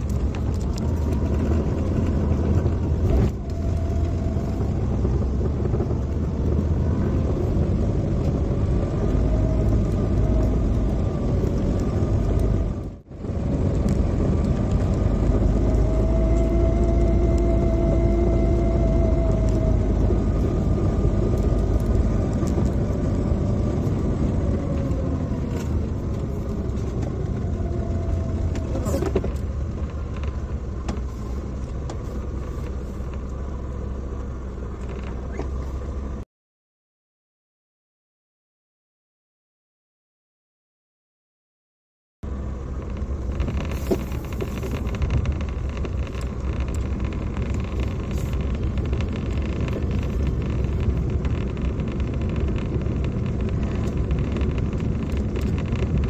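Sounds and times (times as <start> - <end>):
vehicle engine and road noise: 0.0 - 36.3, 42.2 - 56.0.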